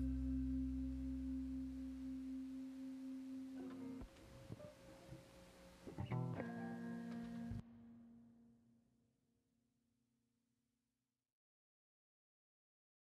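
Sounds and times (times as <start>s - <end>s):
guitar and strings chord: 0.0s - 4.1s
low bass notes: 0.0s - 4.1s.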